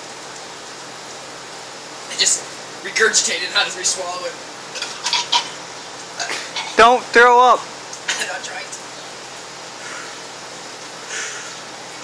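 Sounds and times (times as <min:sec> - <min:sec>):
steady background hiss: 0:00.0 - 0:12.0.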